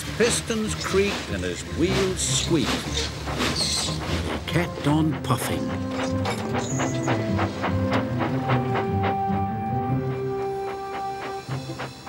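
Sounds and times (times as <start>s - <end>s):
background music: 0.0s - 12.0s
steam engine chuffing: 0.0s - 12.0s.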